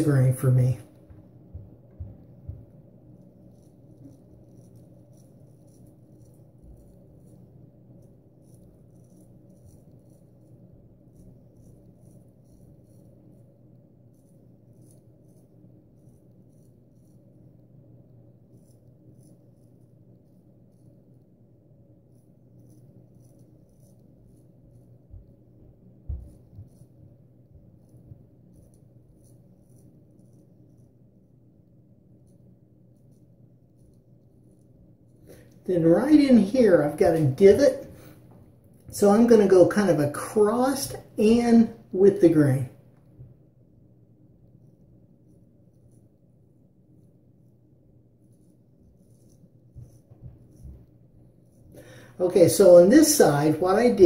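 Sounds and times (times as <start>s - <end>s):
steady low hum: 0.0s - 54.0s
razor scraping stubble: 2.7s - 31.1s, 32.1s - 38.1s, 47.0s - 54.0s.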